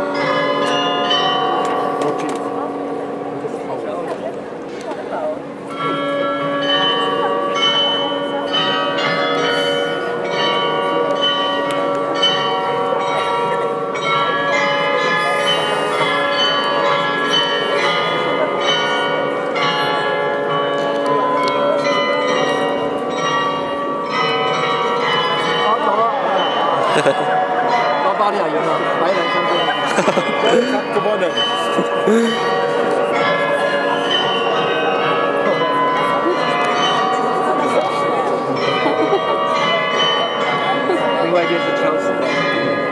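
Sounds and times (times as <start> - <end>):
tuned bells playing melody: 5.7 - 42.9.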